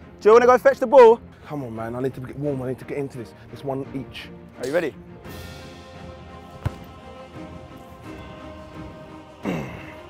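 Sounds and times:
background music: 0.0 - 10.0
football kick thud: 6.6 - 6.9.

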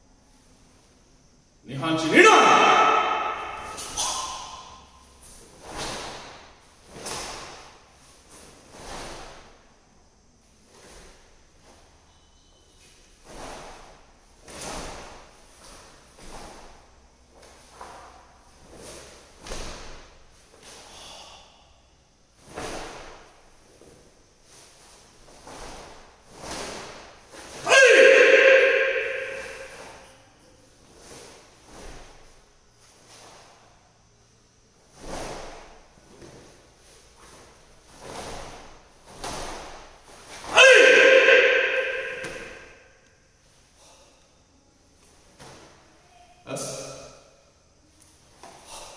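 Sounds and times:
person shouting: 1.8 - 4.6, 27.6 - 30.1, 40.5 - 42.7
forceful exhalations: 20.5 - 23.2, 48.4 - 48.9
cloth swish: 34.9 - 42.6.

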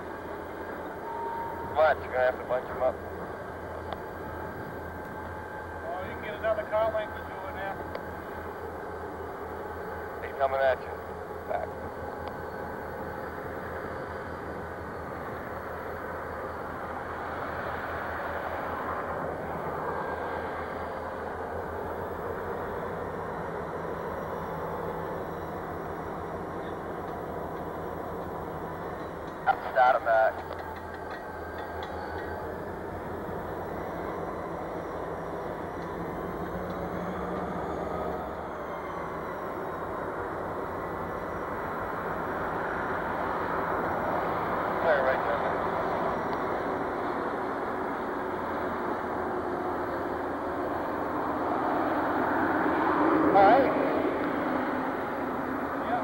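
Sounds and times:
freight train rumble: 0.0 - 56.0.

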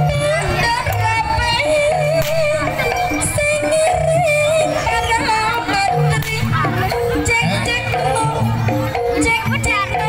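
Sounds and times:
steady drumming: 0.0 - 10.0.

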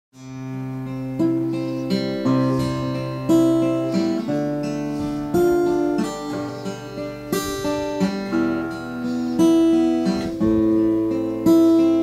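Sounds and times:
acoustic guitar chords: 0.2 - 12.0.

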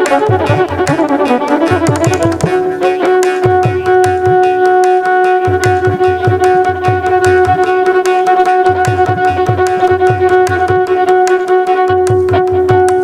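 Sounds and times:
quick drum strokes: 0.0 - 4.6
violin playing: 0.0 - 13.0.

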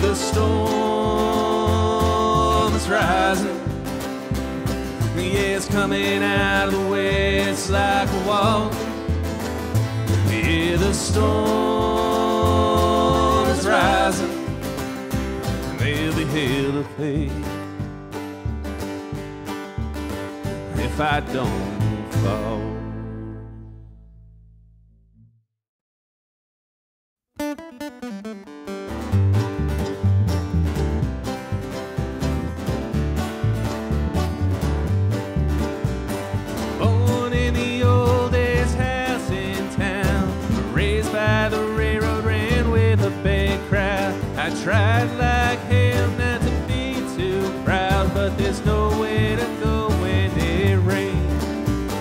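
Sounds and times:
person singing: 0.0 - 3.8, 5.1 - 8.9, 10.1 - 14.6, 15.7 - 17.5, 20.7 - 23.2, 36.8 - 51.4
mandolin: 0.0 - 24.0, 27.4 - 52.0
acoustic guitar: 0.0 - 24.6, 27.4 - 52.0
upright bass: 0.0 - 25.4, 28.8 - 52.0.

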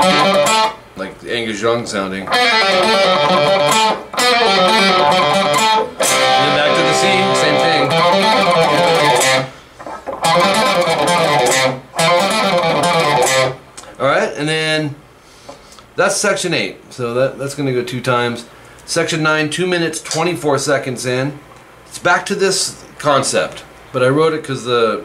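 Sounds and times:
electric guitar fast runs: 2.4 - 9.5, 10.2 - 13.5.

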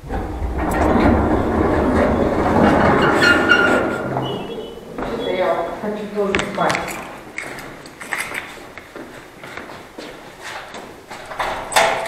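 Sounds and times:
lift squeal: 0.0 - 5.8
lift cab rattling and rumbling: 0.0 - 8.2.

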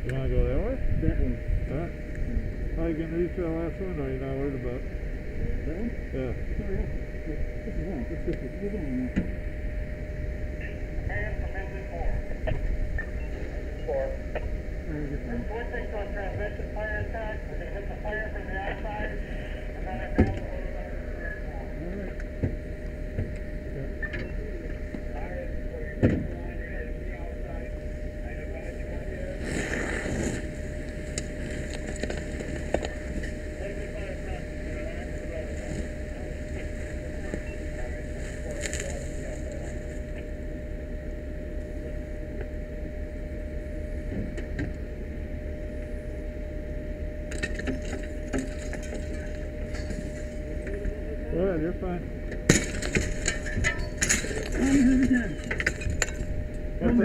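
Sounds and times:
constant whine: 0.0 - 57.0
fire engine rumbling: 0.0 - 57.0.

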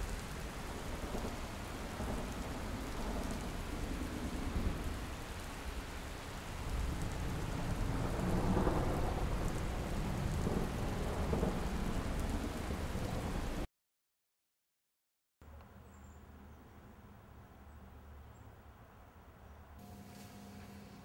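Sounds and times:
rain-like noise: 0.0 - 13.7, 19.8 - 21.0.

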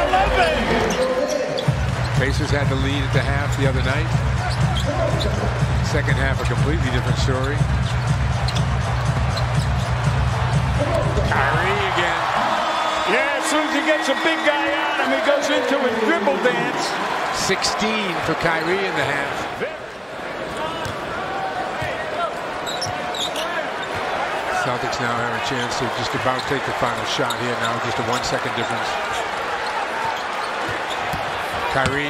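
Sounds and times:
arena crowd din: 0.0 - 32.0
music playing: 1.6 - 15.5.

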